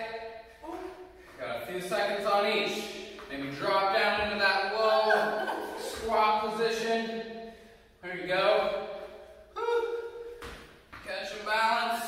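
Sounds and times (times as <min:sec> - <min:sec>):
person's voice in drawn-out tones: 0:09.5 - 0:10.2.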